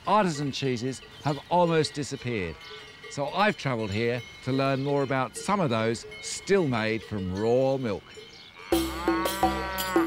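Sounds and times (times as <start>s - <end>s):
cowbells clanking: 0.0s - 10.0s
cow mooing: 8.6s - 10.0s.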